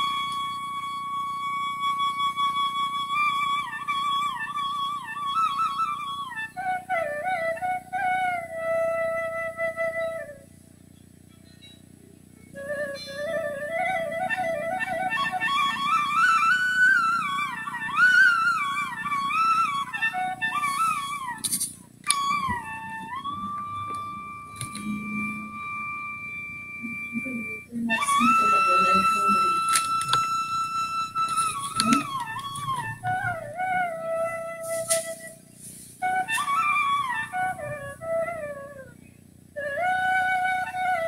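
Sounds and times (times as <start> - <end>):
solo flute melody: 0.0 - 10.6, 12.4 - 41.0.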